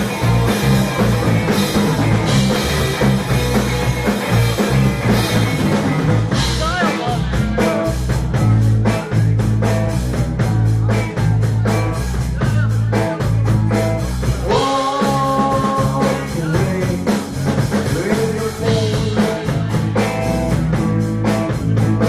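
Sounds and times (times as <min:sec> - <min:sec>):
fast drum beat: 0:00.0 - 0:22.0
rock band playing: 0:00.0 - 0:22.0.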